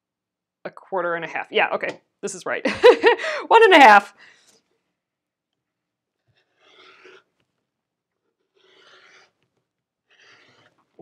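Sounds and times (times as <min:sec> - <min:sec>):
rotary cutter rasping through fabric: 0:04.2 - 0:04.8, 0:06.1 - 0:11.0.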